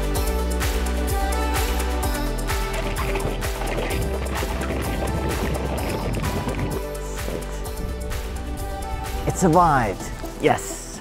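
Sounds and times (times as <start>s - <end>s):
background music with steady beat: 0.0s - 11.0s
water splashing on camera: 2.3s - 8.4s.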